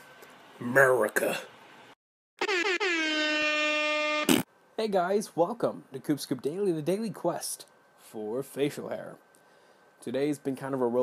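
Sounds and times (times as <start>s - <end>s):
horn-like note sliding down: 2.4s - 4.4s.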